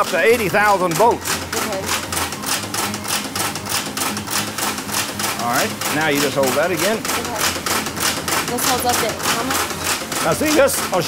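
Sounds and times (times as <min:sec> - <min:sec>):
rapid even clicking: 0:00.0 - 0:11.0
steady low machine hum: 0:00.0 - 0:11.0.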